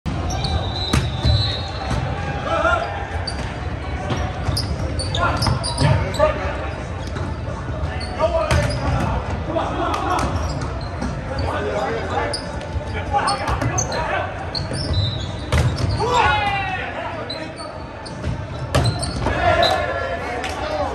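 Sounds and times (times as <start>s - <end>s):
shoes squeaking on hardwood floor: 3.2s - 9.0s, 10.2s - 16.3s, 17.3s - 19.9s.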